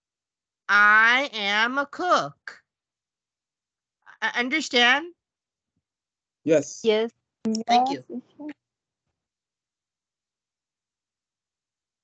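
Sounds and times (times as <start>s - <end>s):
person speaking over video call: 6.5s - 8.5s.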